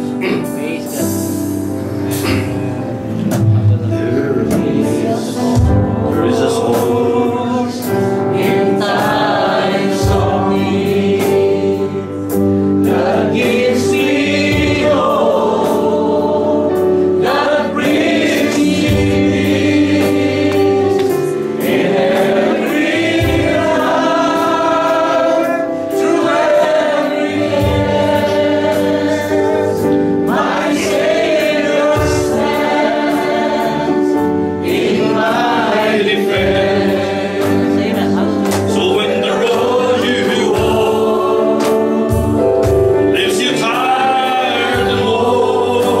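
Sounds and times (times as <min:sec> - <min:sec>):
congregation singing gospel song: 0:00.0 - 0:46.0
instrumental accompaniment: 0:00.0 - 0:46.0.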